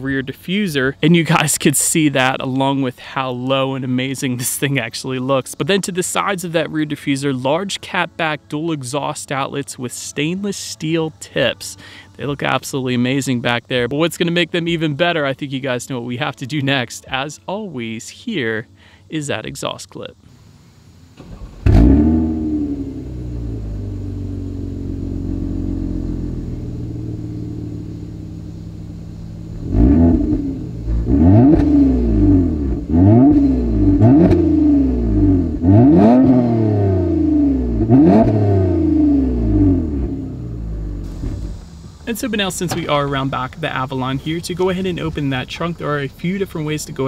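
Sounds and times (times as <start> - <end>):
car engine revving and idling: 20.4 - 47.0.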